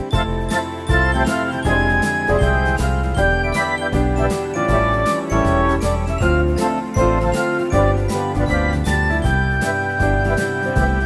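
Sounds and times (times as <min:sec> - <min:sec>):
upbeat music with steady beat: 0:00.0 - 0:11.0.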